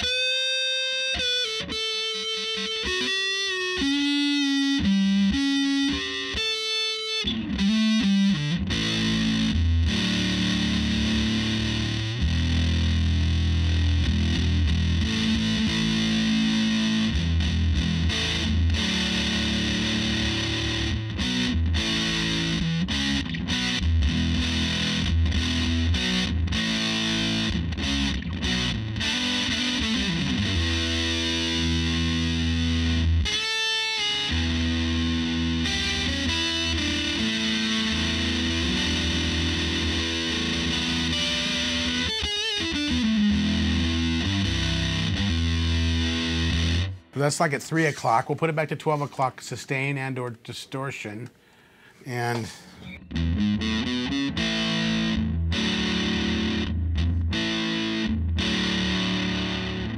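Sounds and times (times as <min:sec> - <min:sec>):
fuzzed electric guitar: 0:00.0 - 0:49.0, 0:51.2 - 0:59.9.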